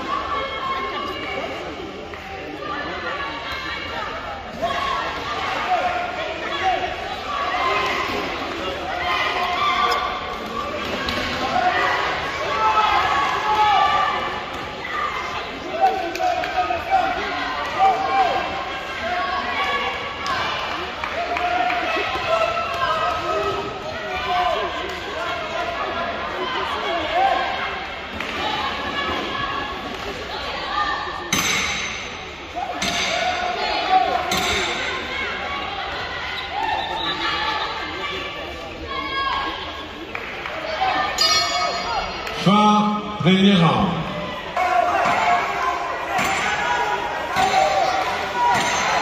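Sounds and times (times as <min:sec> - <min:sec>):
people shouting: 0:43.9 - 0:49.0.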